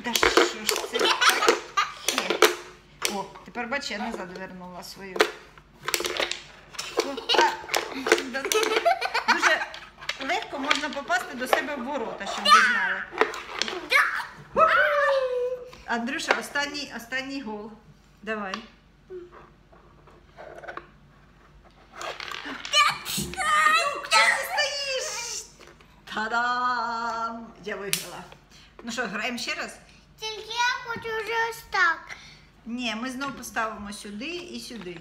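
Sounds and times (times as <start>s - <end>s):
excited high-pitched voices: 12.3s - 13.1s, 13.7s - 15.7s, 22.5s - 25.6s.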